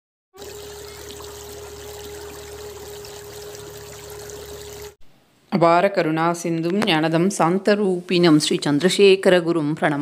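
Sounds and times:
stream running over stones: 0.4 - 5.0.

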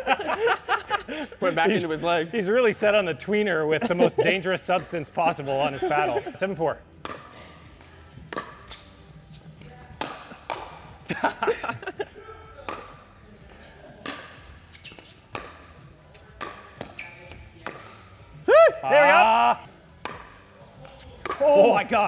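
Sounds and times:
ball bouncing on court: 7.0 - 8.9, 9.6 - 11.2, 12.7 - 13.0, 14.0 - 15.8, 16.4 - 18.1, 20.0 - 22.0
paddles hitting plastic ball: 9.9 - 10.9, 12.7 - 13.0, 15.3 - 15.7, 16.4 - 18.1, 20.0 - 21.8.

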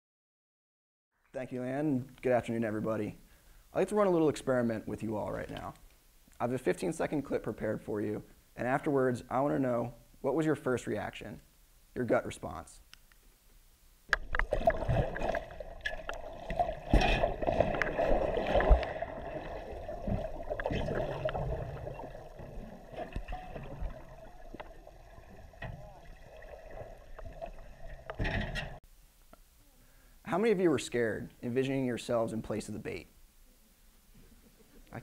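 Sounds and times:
dull underwater knocks: 14.1 - 28.8
underwater rushing bubbling water: 14.2 - 28.2.

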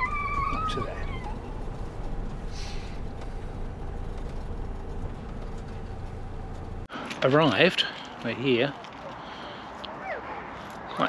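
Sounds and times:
dog whining: 0.0 - 1.6
vehicle engine rumble: 0.0 - 8.2.

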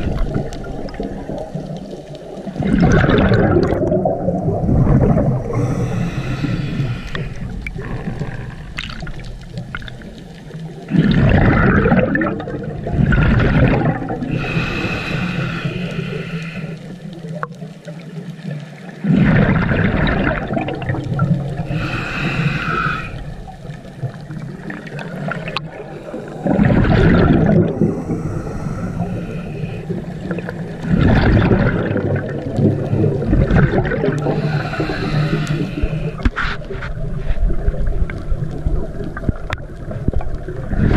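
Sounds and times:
exhaled bubbles underwater: 0.0 - 40.9
regulator hissing inhalations: 5.5 - 7.6, 14.3 - 16.9, 21.7 - 23.3, 27.8 - 30.2, 34.2 - 36.2.

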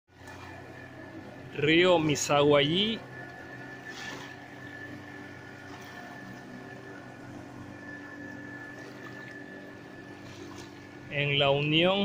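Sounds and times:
distant outboard motor droning: 0.1 - 12.0
soft wash of river: 0.1 - 12.0.

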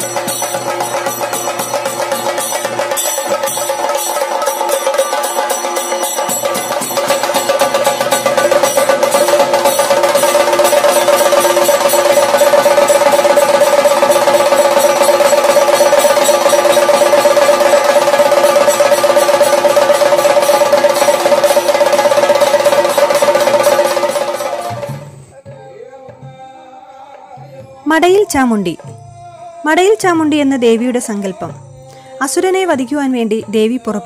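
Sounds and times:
drums beaten in fast roll: 0.0 - 26.4, 27.4 - 31.5.

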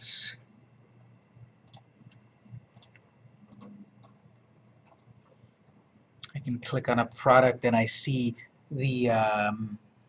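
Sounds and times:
faint computer mouse clicks: 1.6 - 6.4.

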